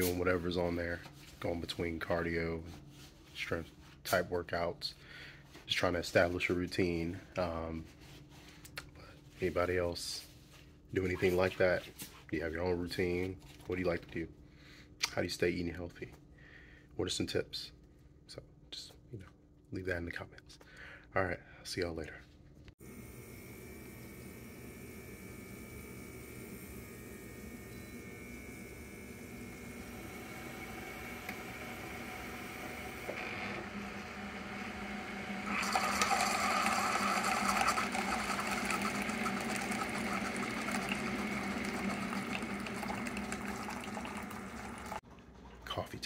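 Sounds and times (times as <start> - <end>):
coffee maker pump humming: 22.8 - 45.0
coffee streaming into cup: 23.7 - 45.0.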